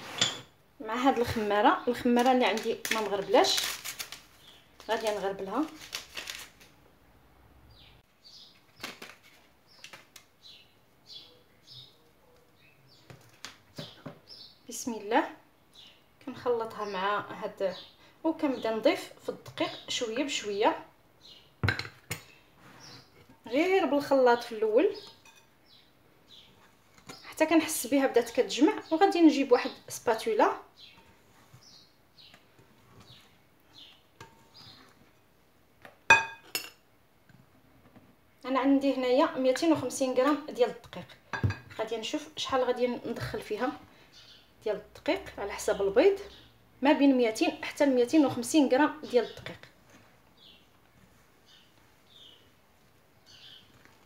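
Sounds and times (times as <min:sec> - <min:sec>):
small bird chirping: 0:53.2 - 0:53.8.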